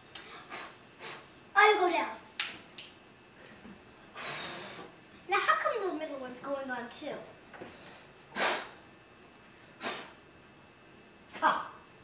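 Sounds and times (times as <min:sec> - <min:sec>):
person blowing breathy puff: 0:00.3 - 0:01.3, 0:04.1 - 0:04.8, 0:08.3 - 0:08.8, 0:09.8 - 0:10.2.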